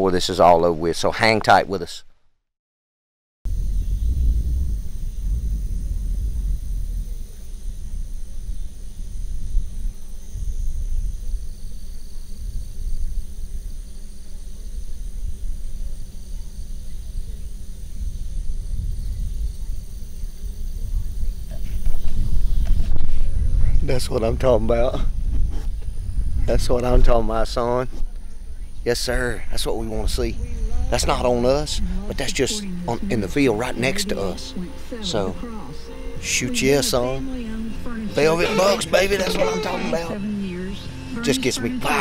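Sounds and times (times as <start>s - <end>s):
loud low rumble: 3.5s - 11.4s, 14.7s - 42.0s.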